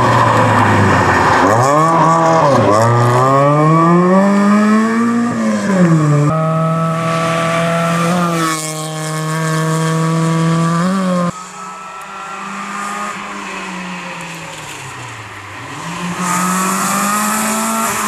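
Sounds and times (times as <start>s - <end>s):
rally car engine revving: 0.0s - 18.0s.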